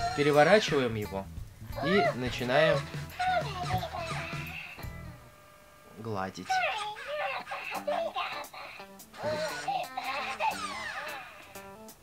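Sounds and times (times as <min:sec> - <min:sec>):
toy electronic voice warbling: 0:06.5 - 0:11.6.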